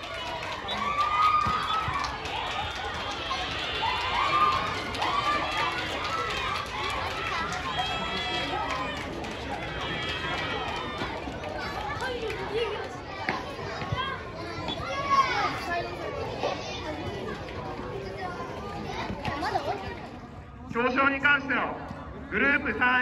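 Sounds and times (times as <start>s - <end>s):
spectators talking: 0.0s - 23.0s.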